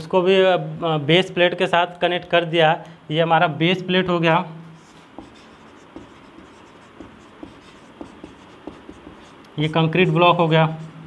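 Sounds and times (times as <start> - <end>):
marker scratching on whiteboard: 4.8 - 11.0
marker tip tapping: 5.2 - 9.5.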